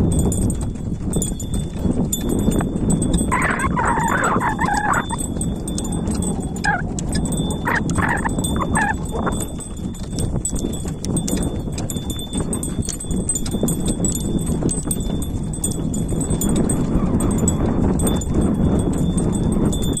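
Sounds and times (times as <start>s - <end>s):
hooves clip-clopping: 0.0s - 20.0s.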